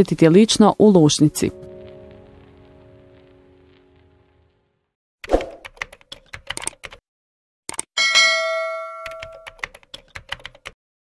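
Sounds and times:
keyboard typing clicks: 0:05.3 - 0:07.0, 0:07.7 - 0:07.9, 0:09.0 - 0:10.8
bell ding: 0:08.0 - 0:09.6.

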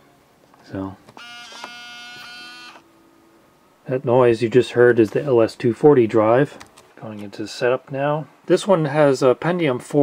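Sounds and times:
disk drive buzzing whine: 0:01.1 - 0:03.6.

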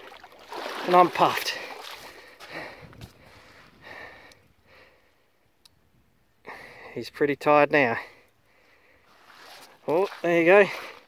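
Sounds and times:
person breathing hard: 0:01.5 - 0:05.3.

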